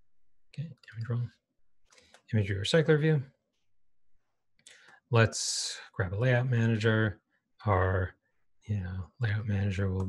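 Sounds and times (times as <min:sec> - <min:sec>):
man speaking: 0:00.6 - 0:01.4, 0:02.3 - 0:03.3, 0:05.1 - 0:08.1, 0:08.7 - 0:10.0.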